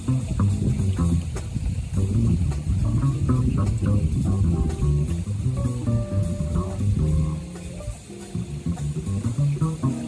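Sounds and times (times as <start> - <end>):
light drums and cymbals: 0.0 - 10.0
plucked double bass: 0.0 - 10.0
electric guitar: 2.5 - 10.0.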